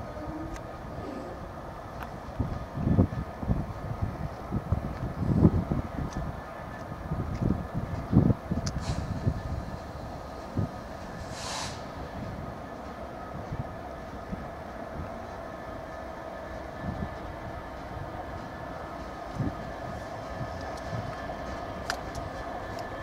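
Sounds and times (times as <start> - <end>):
engine whine: 0.0 - 23.0
locomotive engine humming: 0.0 - 23.0
brief hiss: 8.8 - 9.2, 11.2 - 12.0.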